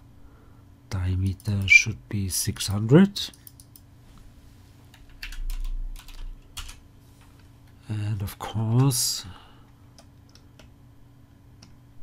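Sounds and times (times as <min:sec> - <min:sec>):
computer keyboard typing: 0:02.5 - 0:03.9, 0:04.9 - 0:06.8.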